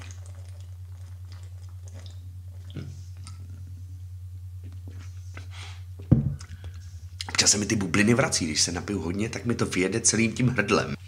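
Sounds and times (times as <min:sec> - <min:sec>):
person gulping and swallowing: 0:00.0 - 0:03.7
steady low hum: 0:00.0 - 0:11.0.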